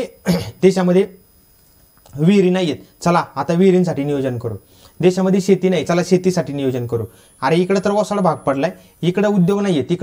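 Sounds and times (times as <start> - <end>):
man clearing his throat: 0.2 - 0.6.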